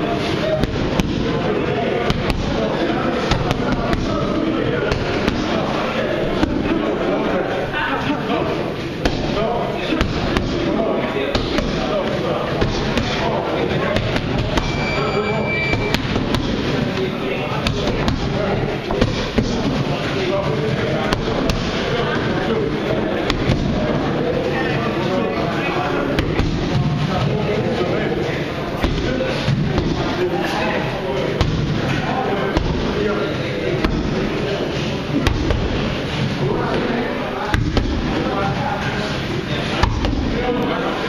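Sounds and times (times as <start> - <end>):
people talking: 0.0 - 41.0
boxing gloves hitting focus mitts: 0.5 - 1.4, 2.0 - 5.6, 9.0 - 11.9, 15.8 - 16.8, 23.2 - 23.9, 28.8 - 30.1, 31.4 - 33.0, 35.2 - 35.9, 37.4 - 38.2.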